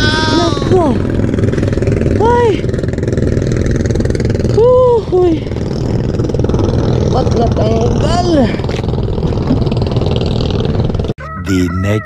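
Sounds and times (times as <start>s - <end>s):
person calling out: 0.0s - 1.1s, 11.2s - 12.0s
boat engine running: 0.0s - 12.0s.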